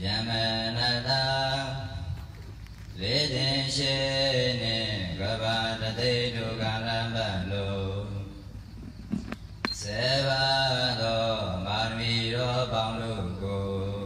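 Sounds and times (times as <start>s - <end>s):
monks chanting: 0.0s - 2.1s, 3.0s - 8.4s, 9.8s - 14.0s.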